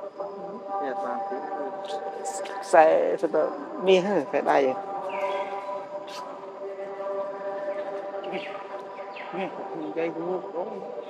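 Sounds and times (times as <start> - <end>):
steady multi-pitch drone: 0.0 - 11.0.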